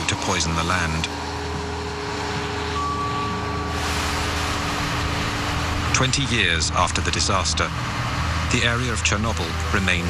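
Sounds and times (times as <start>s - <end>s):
vehicle engine and road rumble: 0.0s - 10.0s
brief high steady tone: 1.3s - 5.4s.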